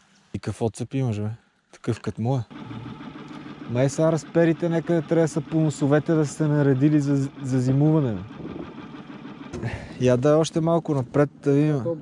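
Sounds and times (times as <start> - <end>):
outboard motor humming: 1.9 - 12.0.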